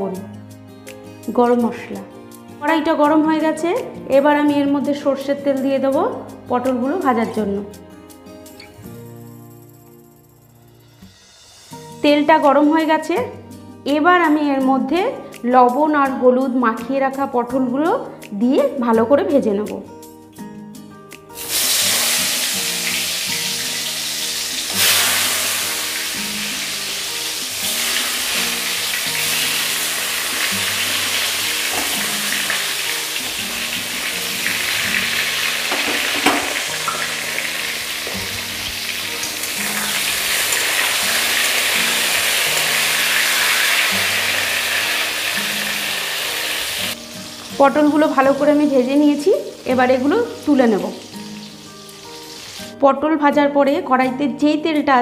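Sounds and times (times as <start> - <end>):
background music: 0.0 - 55.0
vegetables sizzling in hot oil: 21.3 - 52.7.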